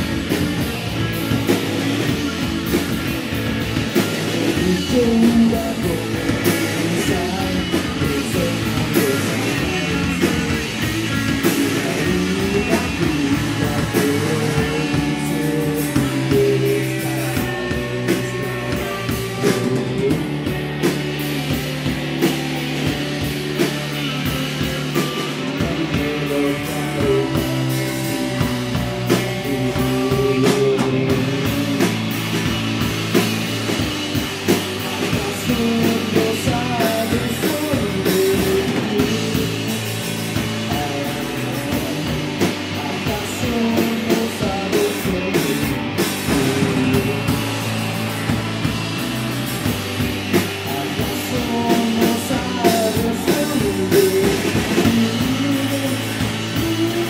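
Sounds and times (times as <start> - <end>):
bass guitar: 0.0 - 57.0
drum kit beat: 0.0 - 57.0
electric guitar: 0.0 - 57.0
man singing: 3.9 - 21.0, 22.8 - 32.9, 33.7 - 48.4, 50.6 - 57.0.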